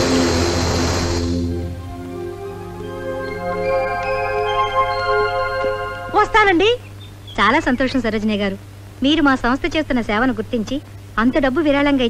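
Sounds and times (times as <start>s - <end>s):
background music: 0.0s - 6.9s.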